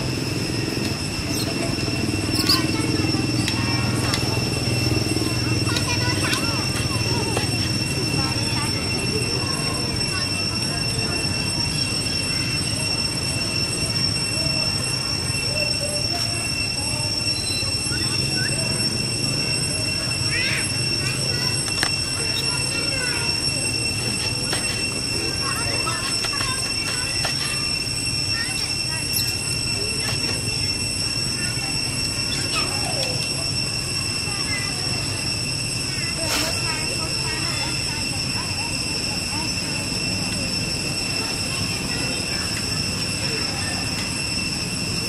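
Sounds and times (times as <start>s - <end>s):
high-pitched whine: 0.0s - 45.0s.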